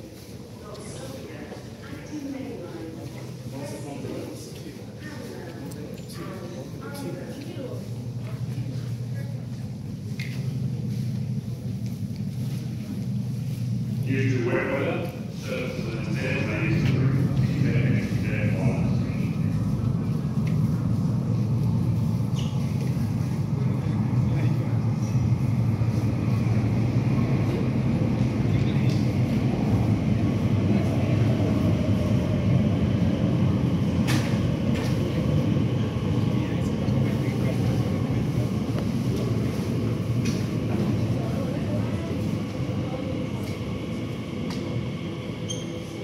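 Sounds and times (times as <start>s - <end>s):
underground train rumbling: 0.0s - 46.0s.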